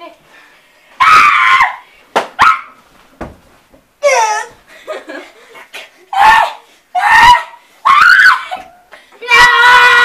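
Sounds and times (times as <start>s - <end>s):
thud: 3.1s - 3.6s
child squealing: 4.0s - 4.6s
children yelping: 6.1s - 10.0s.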